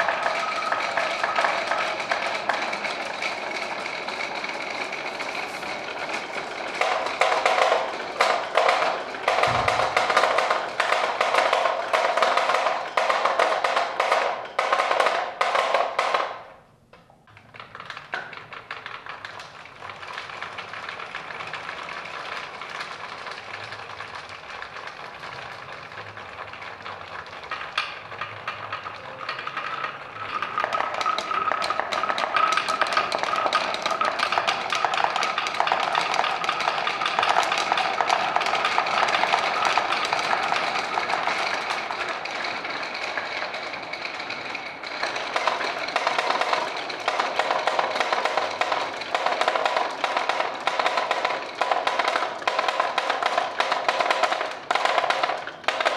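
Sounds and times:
marbles clattering on wooden tracks: 0.0 - 16.6, 17.4 - 55.9.

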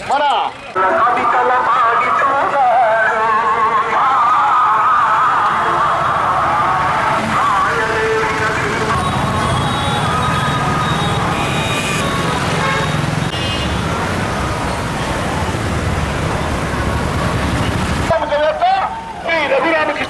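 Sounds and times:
cars and motorcycles: 0.0 - 20.0
crowd noise: 0.0 - 20.0.

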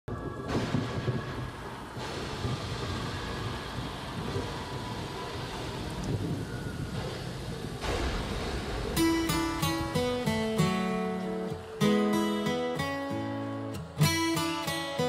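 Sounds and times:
thunder rumble: 0.1 - 12.5
rain hiss: 0.1 - 15.0.

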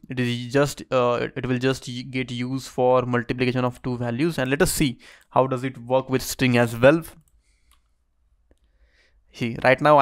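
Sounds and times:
computer mouse clicks: 7.1 - 8.8.

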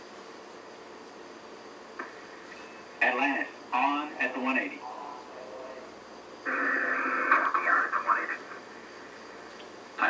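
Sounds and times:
radio voice transmission: 6.5 - 8.7.

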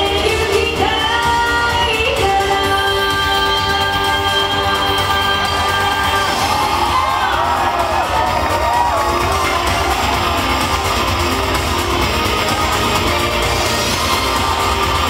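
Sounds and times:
crowd cheering and whooping: 4.6 - 15.0.

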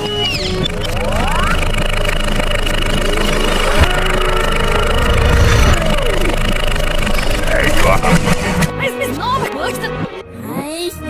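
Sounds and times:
cartoon engine running: 0.0 - 9.0.

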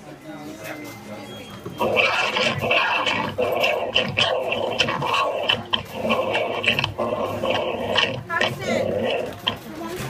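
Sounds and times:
toy growling: 1.8 - 9.7.

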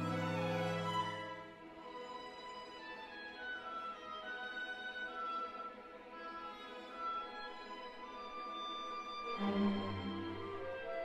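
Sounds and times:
orchestra playing quiet strings: 0.0 - 11.0.

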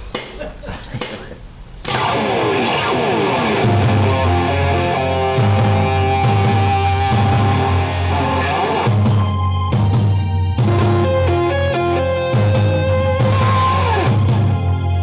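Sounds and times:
distorted electric guitar: 1.8 - 15.0
backing track bass line: 1.9 - 15.0.

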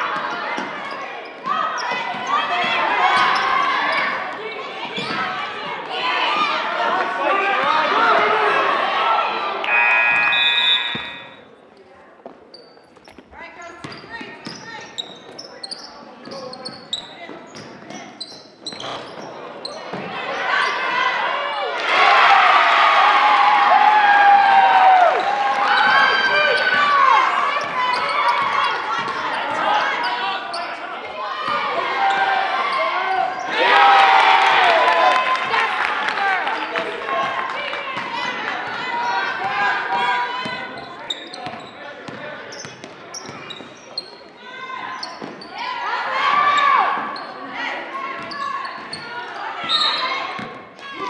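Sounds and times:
sneaker squeaks: 0.6 - 2.6, 4.9 - 5.3, 9.6 - 20.8, 27.5 - 30.8, 40.5 - 45.6, 46.4 - 47.5, 48.1 - 50.6
people shouting: 7.3 - 11.4, 31.2 - 35.6
scoreboard buzzer: 9.6 - 11.5.

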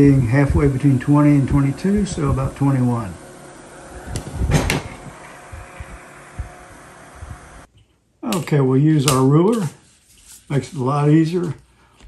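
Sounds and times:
electric desk fan running: 0.0 - 7.7.

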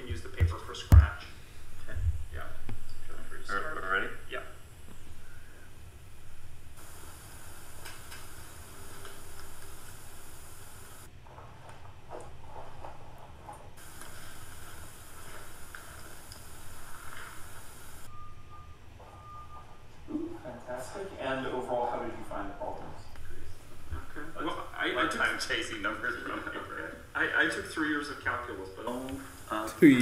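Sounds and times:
steady low hum: 0.0 - 30.0
high hiss: 0.9 - 11.1, 13.8 - 18.1, 23.3 - 30.0
short beeps: 18.1 - 19.8.

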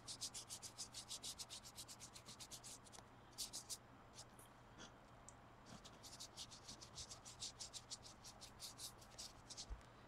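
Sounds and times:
paintbrush scratching on pumpkin: 0.0 - 4.3, 5.7 - 9.7.

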